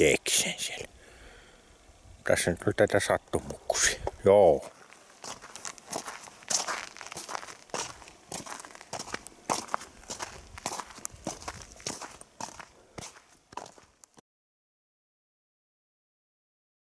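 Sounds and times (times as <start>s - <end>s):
footsteps on frosty gravel: 4.5s - 14.2s.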